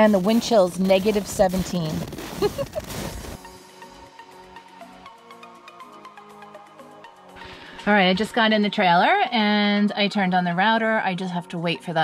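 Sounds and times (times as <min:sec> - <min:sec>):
rustling on microphone: 0:00.0 - 0:03.5.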